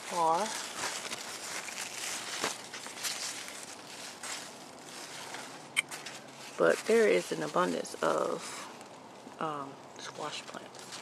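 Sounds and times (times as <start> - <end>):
leaves rustling: 0.0 - 11.0.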